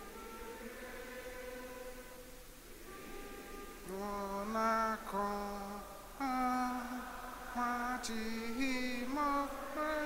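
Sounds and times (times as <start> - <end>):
person singing hymn notes: 0.0 - 10.0.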